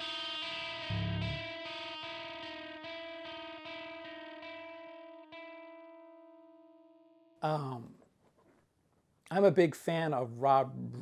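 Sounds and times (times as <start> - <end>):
pulsing electric guitar chord: 0.1 - 7.3
low hit: 0.9 - 1.4.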